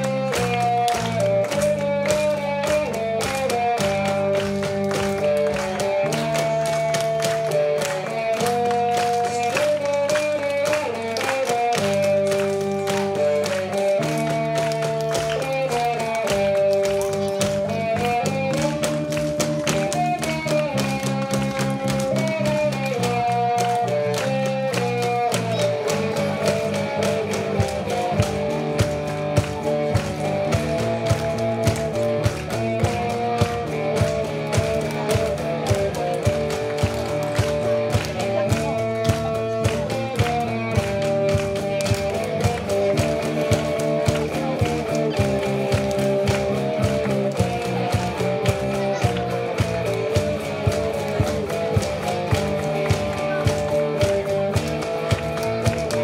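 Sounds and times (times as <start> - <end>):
rock and roll guitar and bass: 0.0 - 56.0
sharp percussion beats: 0.0 - 56.0.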